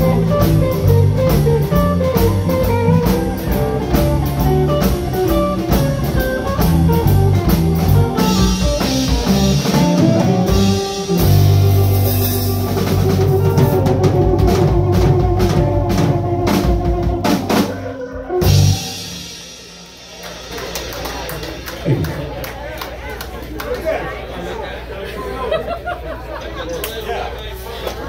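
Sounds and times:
drum flurry: 0.0s - 22.4s
blues band playing: 0.0s - 23.6s.

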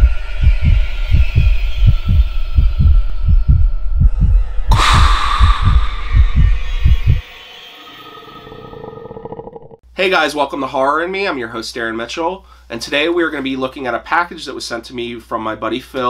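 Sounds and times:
heartbeat-like low thumping: 0.0s - 7.4s
noisy whoosh: 0.0s - 8.8s
eerie held tone: 0.0s - 9.8s.

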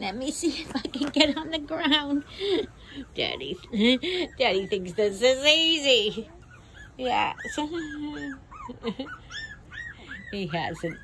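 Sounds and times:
puppies whimpering: 0.0s - 11.0s.

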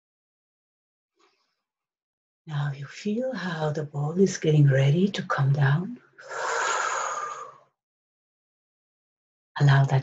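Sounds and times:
woman breathing: 6.2s - 7.7s.

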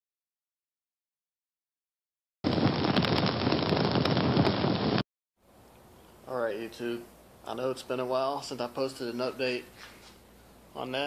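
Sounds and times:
fire crackling: 2.4s - 5.0s.

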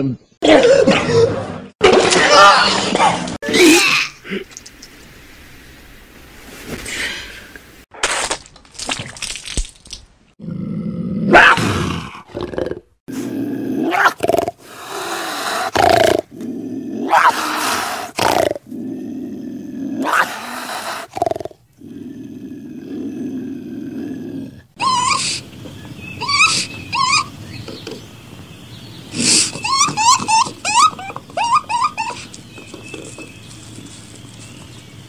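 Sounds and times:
animals growling and crying: 10.4s - 28.0s, 29.1s - 33.2s.

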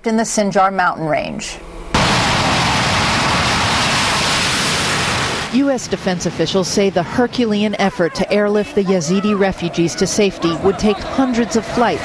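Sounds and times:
steady loud rushing noise: 1.8s - 12.0s.

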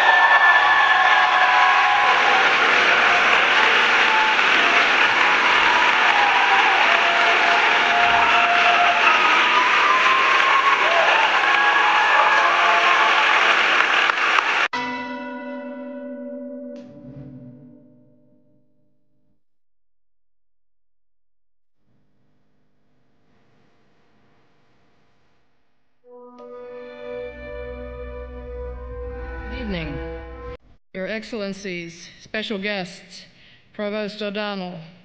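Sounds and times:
audience applauding: 0.0s - 14.7s
bell-like chime tone: 14.8s - 18.5s.

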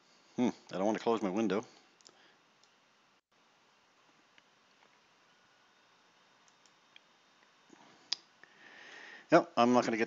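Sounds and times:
faint room hiss: 0.0s - 10.0s
computer mouse clicks: 6.4s - 7.1s.

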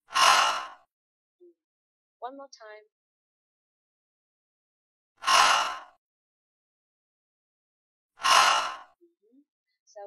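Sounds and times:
woman making breathy h sounds: 5.2s - 5.9s, 8.2s - 9.0s.

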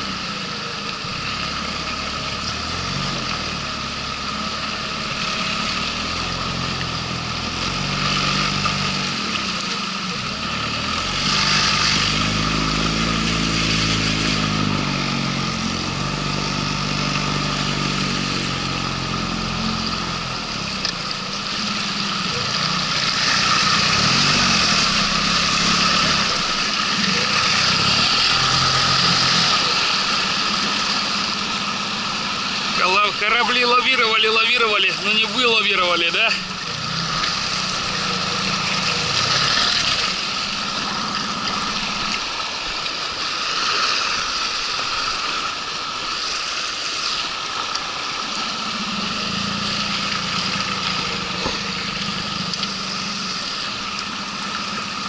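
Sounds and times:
outboard jet motor running: 0.0s - 55.0s
water rushing along hull: 0.0s - 55.0s.

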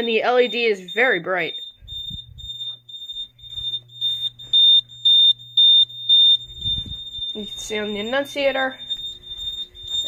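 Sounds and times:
alarm beeping high tone: 0.0s - 10.0s
low steady hum: 0.0s - 10.0s.

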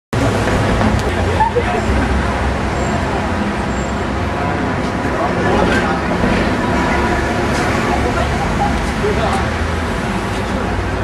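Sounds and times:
road traffic rumble: 0.1s - 11.0s
people talking: 0.8s - 11.0s.

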